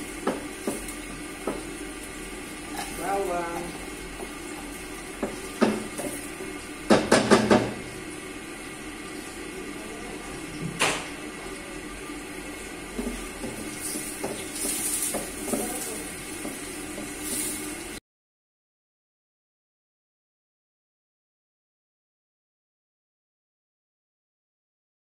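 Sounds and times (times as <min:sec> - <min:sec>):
wooden spatula knocking on pot: 0:00.2 - 0:01.7, 0:05.2 - 0:06.2, 0:06.8 - 0:07.8, 0:13.0 - 0:17.2.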